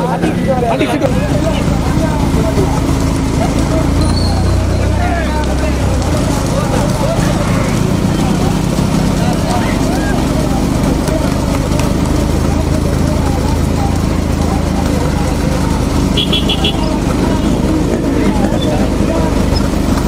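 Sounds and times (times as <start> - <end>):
cart wheels on tarmac: 0.0 - 20.0
engine running: 0.0 - 20.0
hooves on tarmac: 0.0 - 20.0
voices shouting: 0.0 - 20.0.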